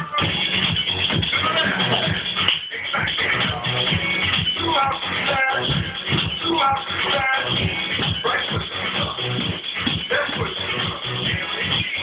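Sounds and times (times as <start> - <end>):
music with steady beat: 0.0 - 12.0.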